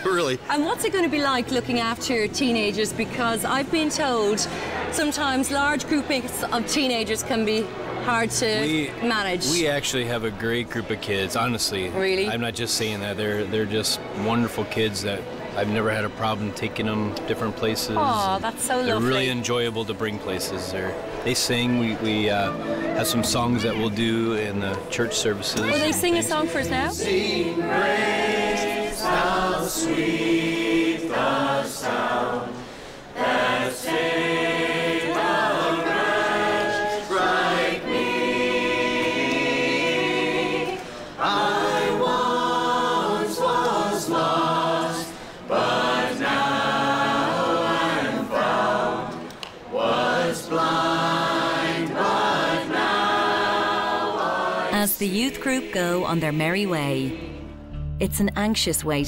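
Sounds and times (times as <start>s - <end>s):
group singing unaccompanied: 20.9s - 57.6s.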